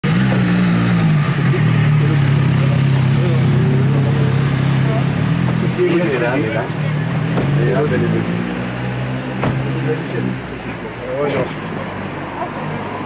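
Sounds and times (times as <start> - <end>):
car engine idling: 0.0 - 13.0.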